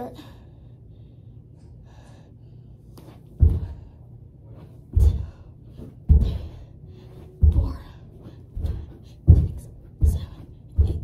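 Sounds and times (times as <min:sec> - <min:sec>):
feet thudding on floor: 0:03.0 - 0:04.0, 0:04.6 - 0:11.0.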